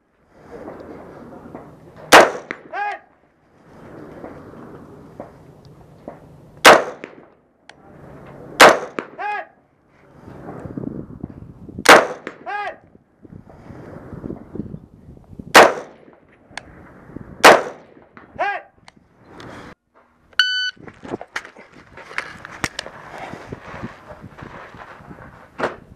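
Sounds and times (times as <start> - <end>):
rifle shots: 2.1 - 2.8, 6.6 - 7.3, 8.6 - 9.2, 11.9 - 12.5, 15.5 - 16.1, 17.4 - 18.1.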